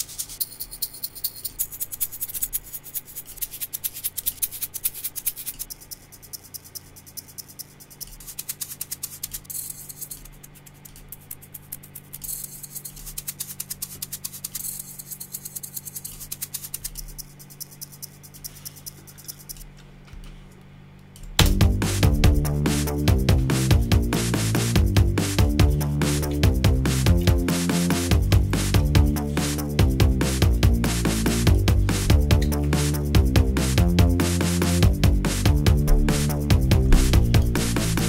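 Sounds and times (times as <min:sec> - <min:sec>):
shaker rhythm: 0:00.0 - 0:19.7, 0:21.4 - 0:38.0
low electrical hum: 0:00.0 - 0:38.0.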